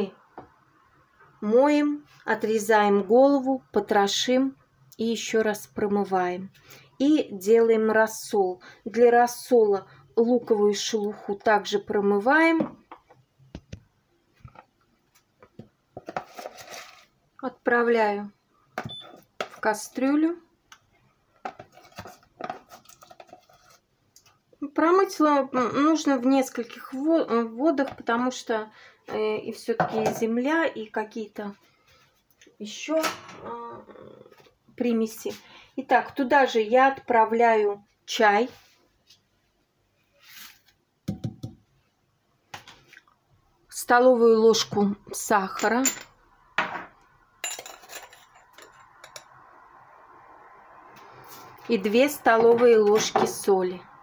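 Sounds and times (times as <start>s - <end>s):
metal spoon clinking: 47.4s - 49.4s.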